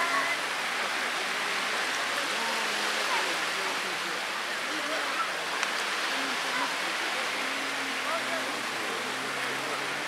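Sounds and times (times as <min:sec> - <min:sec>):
faint voices: 0:00.0 - 0:10.0
sea water rushing: 0:00.0 - 0:10.0.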